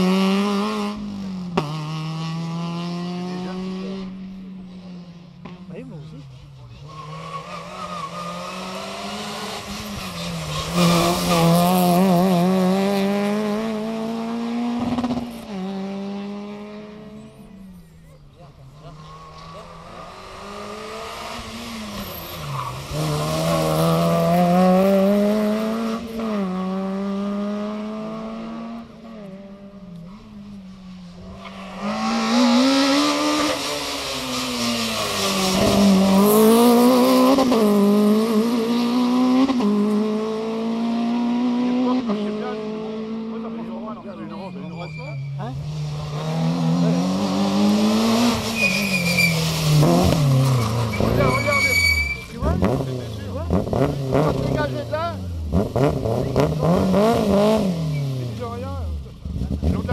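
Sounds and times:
rally car engines revving: 0.0s - 59.9s
tyre squeal: 6.7s - 8.7s, 44.3s - 45.6s, 48.4s - 52.4s.

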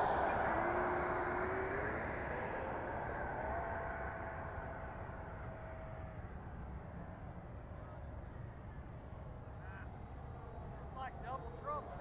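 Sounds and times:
model jet fan whine: 0.0s - 12.0s.

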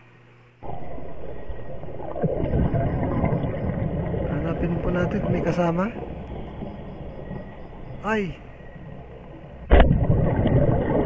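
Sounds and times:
muffled underwater noise: 0.6s - 11.0s.

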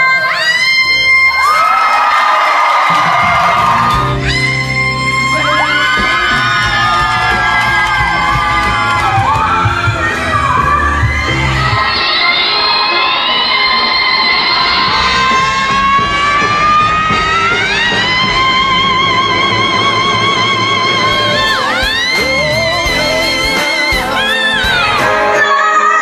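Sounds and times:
audience cheering and whooping: 0.2s - 26.0s
women belting high notes: 3.0s - 26.0s.

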